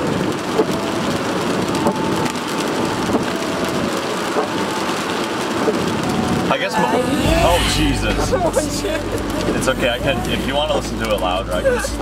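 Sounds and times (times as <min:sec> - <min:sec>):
rain pattering on car roof: 0:00.0 - 0:12.0
road noise: 0:00.0 - 0:12.0.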